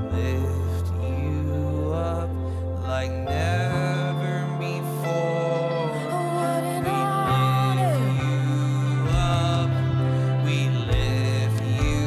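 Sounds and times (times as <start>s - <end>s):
guitar: 0.0s - 12.0s
woman singing long notes: 5.6s - 8.7s.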